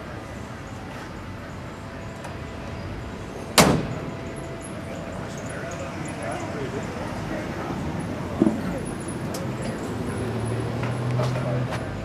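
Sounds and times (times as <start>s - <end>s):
car door shutting with thud: 3.6s - 4.1s.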